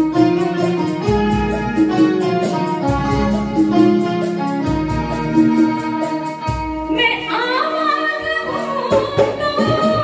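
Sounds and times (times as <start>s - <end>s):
electronic keyboard chords: 0.0s - 7.2s.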